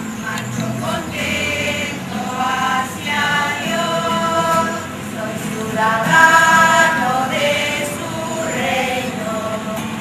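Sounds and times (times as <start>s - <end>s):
acoustic guitar strumming: 0.0s - 10.0s
women singing a hymn: 0.1s - 10.0s.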